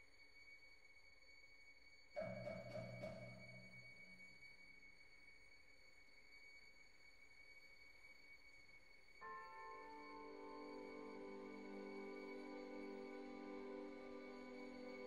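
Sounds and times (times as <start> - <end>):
faint high orchestral tone: 9.2 - 15.0.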